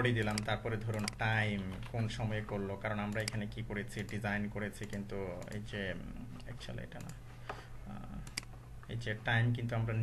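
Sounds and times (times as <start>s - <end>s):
steady low hum: 0.0s - 10.0s
keyboard and mouse clicks: 0.1s - 2.1s, 3.0s - 4.2s, 4.8s - 5.7s, 8.2s - 8.6s.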